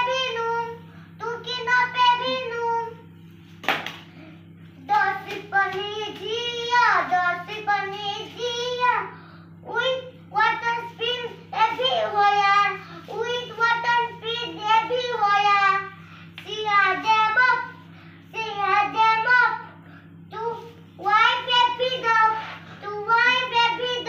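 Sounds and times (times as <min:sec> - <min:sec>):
child singing: 0:00.0 - 0:03.0, 0:04.8 - 0:09.1, 0:09.7 - 0:19.6, 0:20.3 - 0:24.0.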